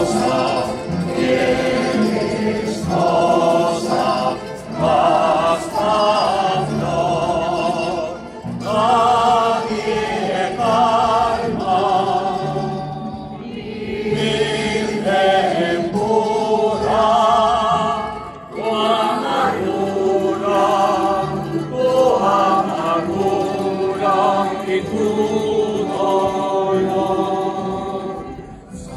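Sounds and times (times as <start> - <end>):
choir singing a hymn: 0.0 - 28.9.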